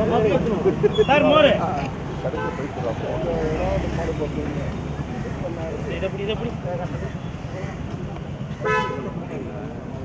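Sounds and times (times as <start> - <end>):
road traffic rumble: 0.0 - 10.0
voices talking: 0.0 - 10.0.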